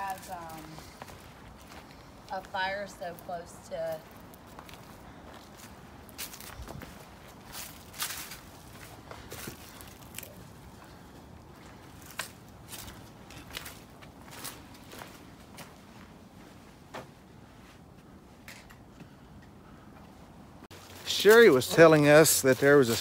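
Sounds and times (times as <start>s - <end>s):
footsteps crunching dry leaves: 0.0s - 3.3s, 3.9s - 16.6s, 20.7s - 23.0s.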